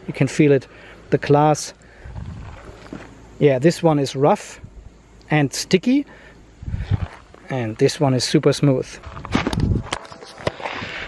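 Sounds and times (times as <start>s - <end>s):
rustle: 0.1s - 11.0s
camera handling rumble: 9.1s - 10.8s.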